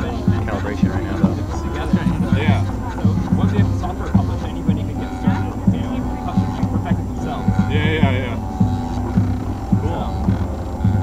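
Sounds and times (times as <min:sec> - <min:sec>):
steady printer hum: 0:00.0 - 0:11.0
stepper motors whining: 0:00.0 - 0:11.0.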